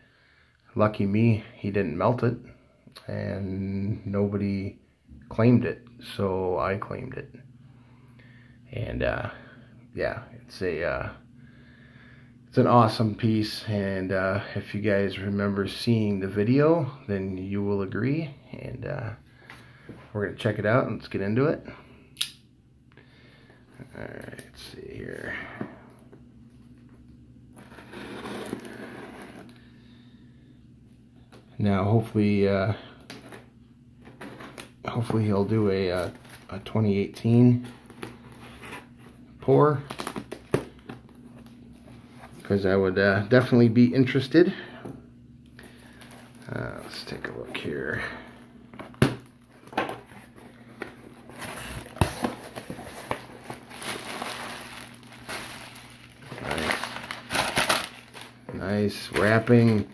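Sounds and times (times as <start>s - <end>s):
cardboard and plastic rustling: 27.6s - 29.6s, 33.1s - 42.6s, 48.7s - 59.9s.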